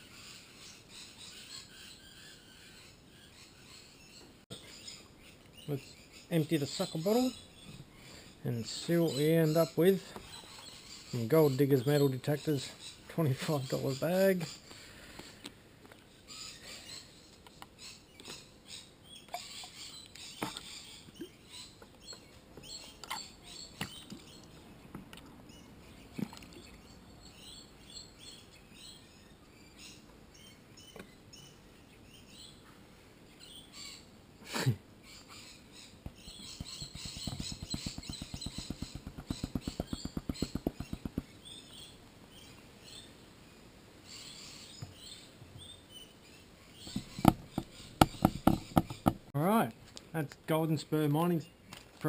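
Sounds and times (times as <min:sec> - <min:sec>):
faint bird chirps: 0:16.1 - 0:24.7, 0:25.5 - 0:49.1
sharp taps: 0:36.0 - 0:41.3, 0:46.9 - 0:49.2.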